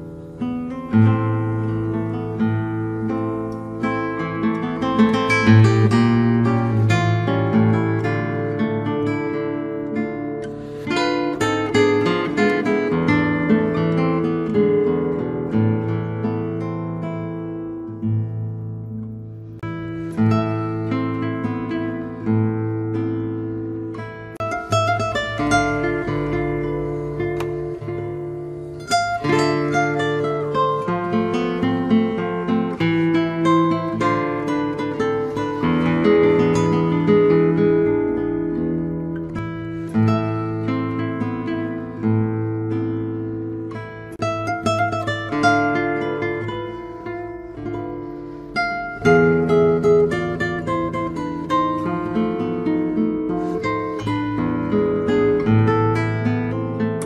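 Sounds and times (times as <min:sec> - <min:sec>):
classical guitar fingerpicked: 0:00.0 - 0:57.0.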